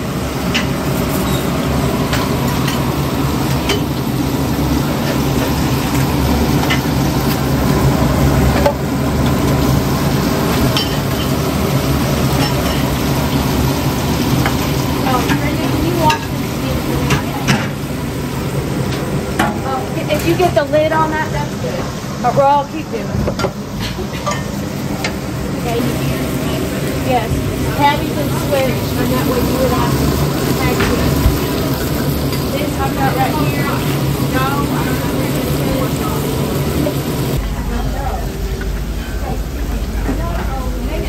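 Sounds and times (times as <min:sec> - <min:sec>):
food sizzling on a griddle: 0:00.0 - 0:38.3
low mechanical hum: 0:00.0 - 0:41.0
utensils clicking and clinking: 0:00.5 - 0:07.5.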